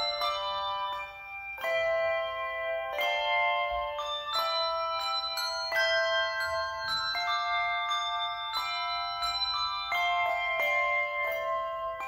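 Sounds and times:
handbells ringing: 0:00.0 - 0:12.0.

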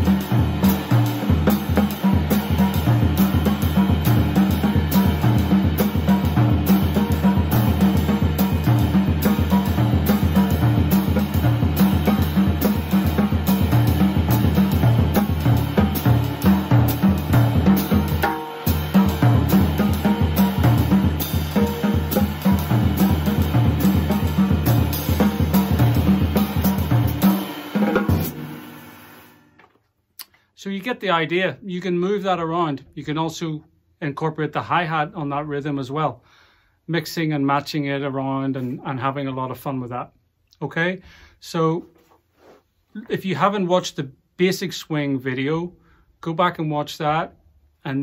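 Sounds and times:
bass drum: 0:00.0 - 0:28.6
snare drum: 0:00.0 - 0:29.4.

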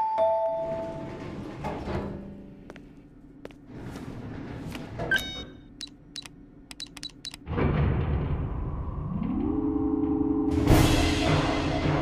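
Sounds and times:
short keypad beeps: 0:05.1 - 0:07.4
card reader beep: 0:05.1 - 0:07.5.

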